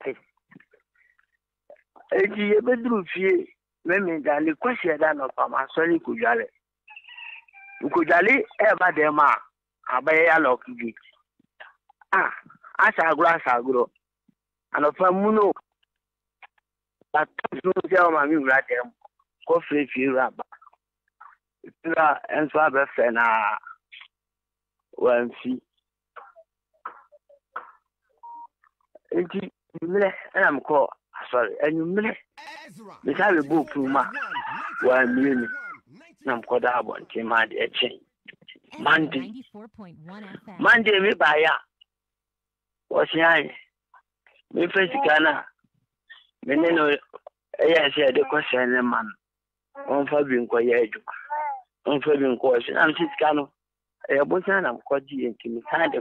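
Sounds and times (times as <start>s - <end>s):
person speaking: 31.8s - 41.3s
person talking: 31.8s - 41.4s.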